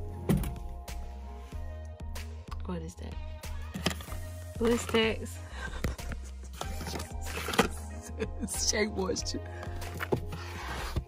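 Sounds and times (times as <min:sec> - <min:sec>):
background music: 0:00.0 - 0:11.0
cardboard cartons rustling and knocking: 0:09.7 - 0:11.0.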